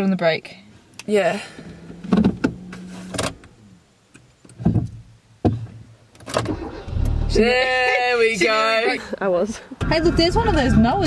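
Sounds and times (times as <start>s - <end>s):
car engine starting rumble: 1.4s - 4.0s, 6.2s - 7.8s
low hum: 1.4s - 4.0s.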